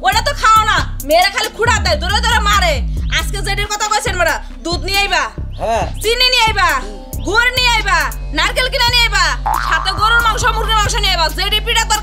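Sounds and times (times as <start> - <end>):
background music with low bass: 0.0 - 12.0
people talking: 0.0 - 12.0.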